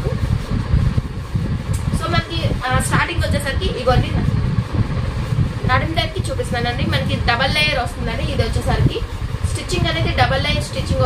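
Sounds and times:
loud low fluttering rumble: 0:00.0 - 0:11.0.

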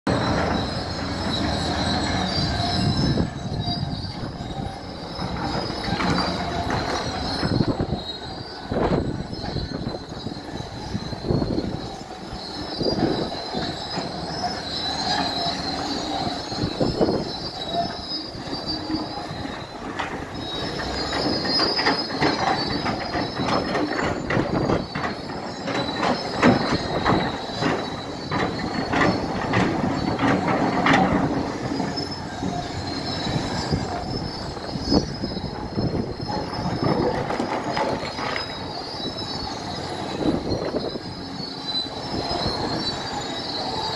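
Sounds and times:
excavator engine running: 0:00.1 - 0:43.9
high metallic squeal: 0:00.1 - 0:43.9.

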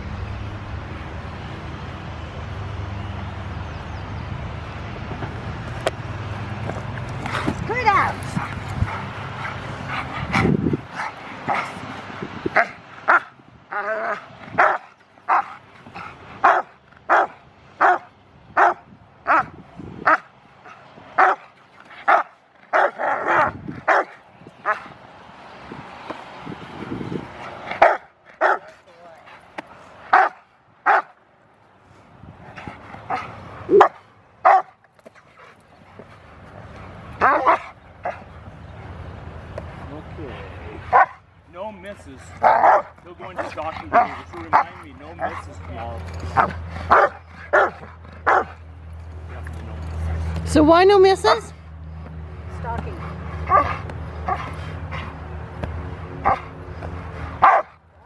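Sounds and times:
dog barking sharply: 0:42.4 - 0:42.9, 0:57.4 - 0:57.7.

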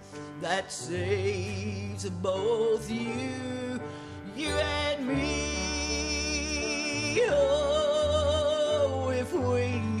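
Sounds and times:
piano accompaniment: 0:00.0 - 0:10.0.

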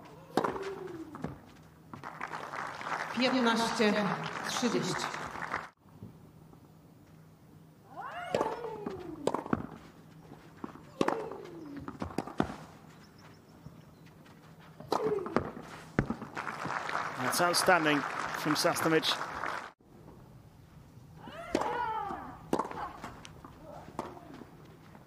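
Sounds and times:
racket hitting tennis ball: 0:00.0 - 0:01.4, 0:08.2 - 0:09.9, 0:10.6 - 0:12.7, 0:14.8 - 0:16.3, 0:21.4 - 0:24.5.

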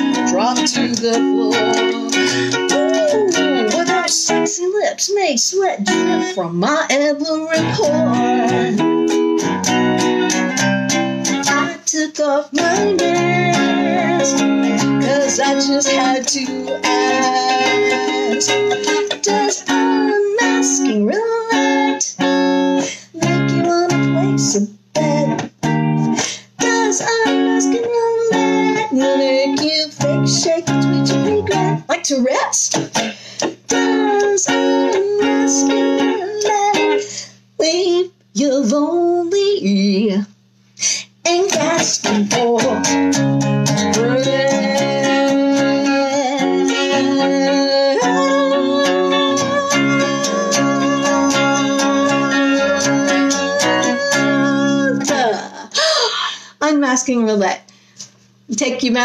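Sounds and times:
electric guitar strumming chords: 0:00.0 - 0:37.6, 0:41.2 - 0:55.5.

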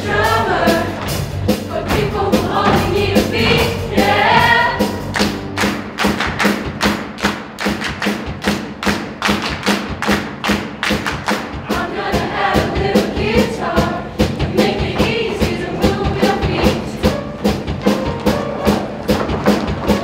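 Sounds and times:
choir singing: 0:00.0 - 0:05.1, 0:11.6 - 0:17.1
heavy drum beat: 0:00.0 - 0:20.0.

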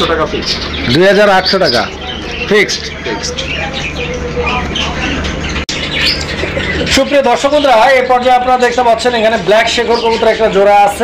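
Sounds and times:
pigeons chirping: 0:00.0 - 0:11.0.

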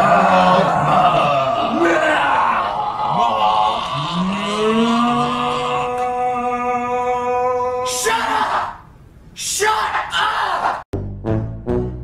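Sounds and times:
man yelling: 0:00.0 - 0:08.8, 0:09.4 - 0:10.8.

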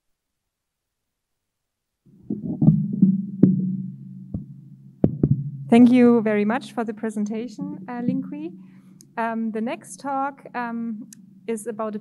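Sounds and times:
low electrical hum: 0:00.0 - 0:12.0
microphone being handled: 0:02.1 - 0:06.0, 0:07.3 - 0:08.5.

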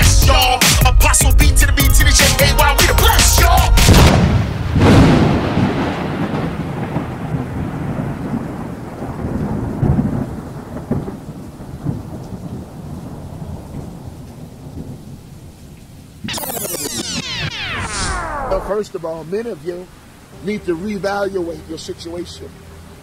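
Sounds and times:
thunder clap rolling: 0:03.9 - 0:12.6
rain hissing: 0:05.5 - 0:21.6
fast falling swoops: 0:16.3 - 0:18.9.

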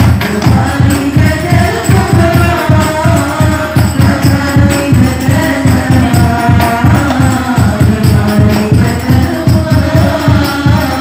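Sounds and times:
frame drums with jingles: 0:00.0 - 0:11.0
group singing: 0:00.0 - 0:11.0.

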